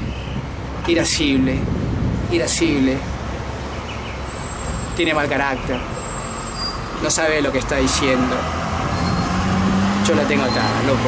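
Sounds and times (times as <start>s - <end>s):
background traffic rumble: 0.0s - 11.0s.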